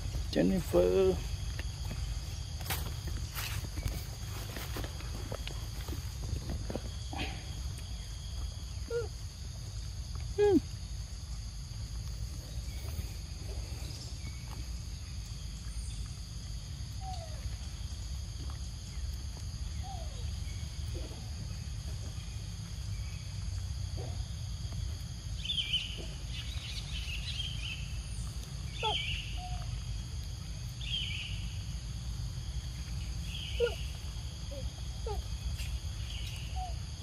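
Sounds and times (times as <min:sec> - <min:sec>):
high insect drone: 0:00.0 - 0:37.0.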